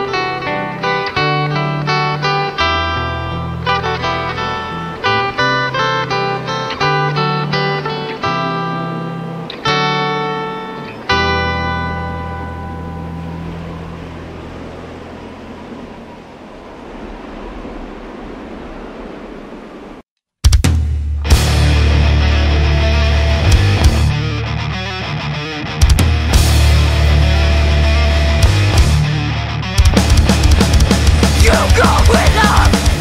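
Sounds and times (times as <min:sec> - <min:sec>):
guitar chords ringing: 0:00.0 - 0:15.2, 0:21.3 - 0:33.0
clean guitar picking notes: 0:00.0 - 0:15.3, 0:21.3 - 0:29.9
low bass notes: 0:20.6 - 0:25.1, 0:25.8 - 0:33.0.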